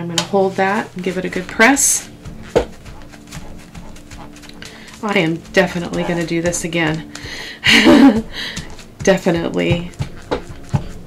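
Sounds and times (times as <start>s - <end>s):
paper towel rustling: 0.3s - 11.0s.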